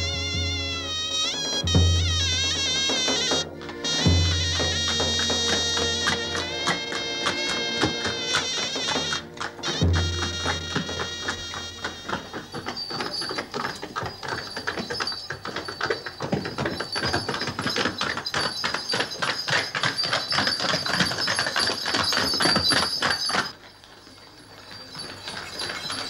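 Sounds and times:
music: 0.0s - 12.4s
horse hooves on stone street: 0.0s - 26.0s.

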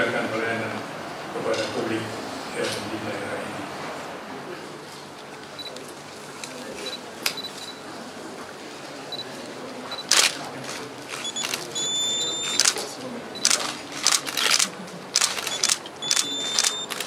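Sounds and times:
camera focus beep: 6.8s - 7.8s, 11.2s - 12.8s, 13.4s - 14.2s, 15.2s - 17.0s
camera shutters clicking: 10.0s - 12.8s, 13.4s - 17.0s.

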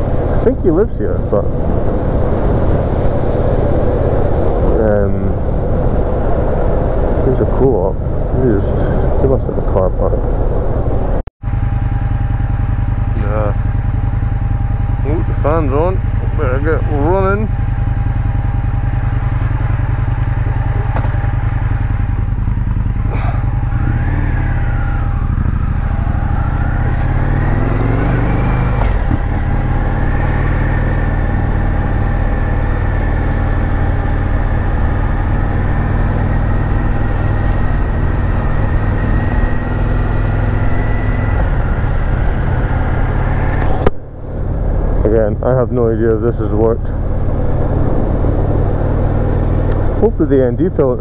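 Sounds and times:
motorcycle engine idling and pulling away: 0.0s - 6.8s, 11.4s - 51.0s.

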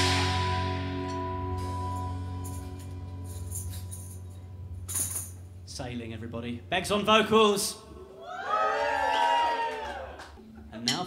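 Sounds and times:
live band final chord: 0.0s - 3.2s
low amplifier hum: 0.0s - 8.5s.

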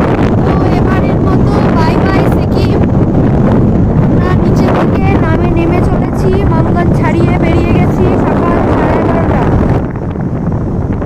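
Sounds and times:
motorcycle engine and road noise: 0.0s - 11.0s
wind buffeting microphone: 0.0s - 11.0s.

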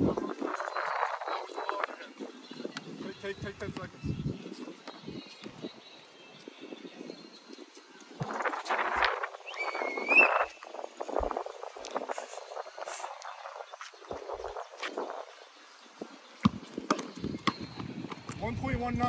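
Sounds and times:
basketball bouncing on brick: 16.4s - 18.4s.

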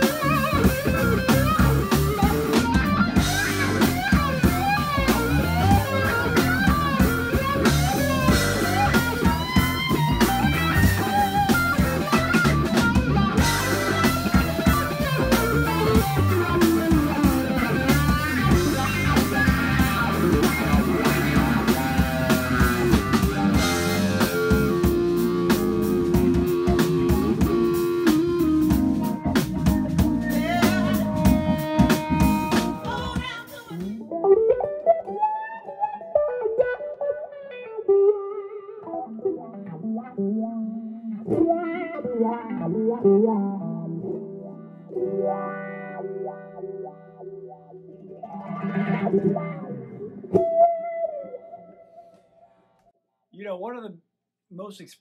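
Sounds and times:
live band with drums and guitar: 0.0s - 52.3s
electric guitar with wah-wah pedal: 0.0s - 52.8s.

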